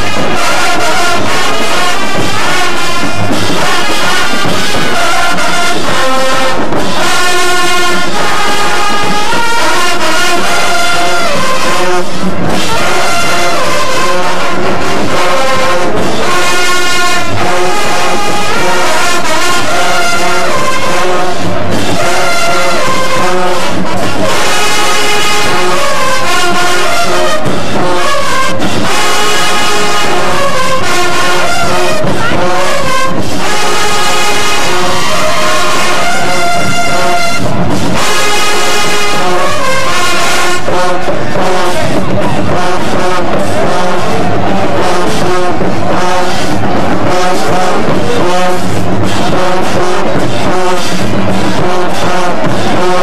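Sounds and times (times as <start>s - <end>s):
brass band sustained chords: 0.0s - 53.0s.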